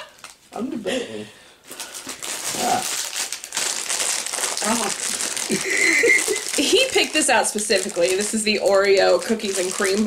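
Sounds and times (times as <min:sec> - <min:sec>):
snack wrapper crinkling: 0:00.0 - 0:00.4, 0:01.7 - 0:10.0.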